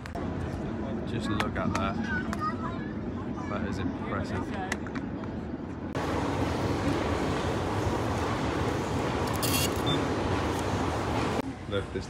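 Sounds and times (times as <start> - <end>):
quiet city ambience: 0.0 - 12.0
underground metro train rumble: 0.1 - 12.0.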